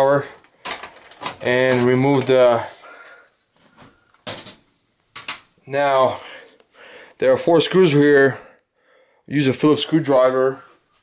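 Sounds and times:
computer parts clattering: 0:00.4 - 0:02.6, 0:04.2 - 0:05.5.

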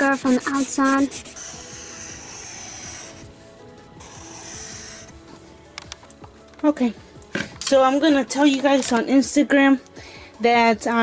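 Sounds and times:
pencil scratching on paper: 0:00.0 - 0:03.3, 0:04.0 - 0:05.2.

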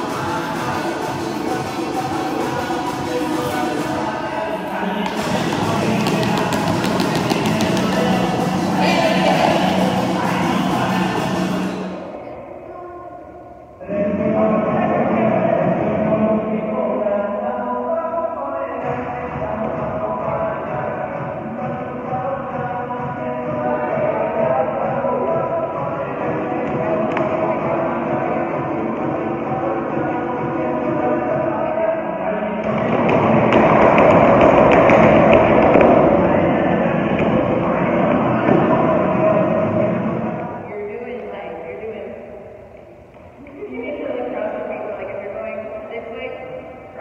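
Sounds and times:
muffled song with vocals: 0:00.0 - 0:47.0.

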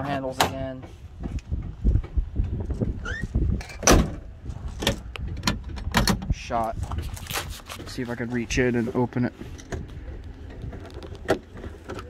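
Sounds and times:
short squeak: 0:03.0 - 0:03.3.

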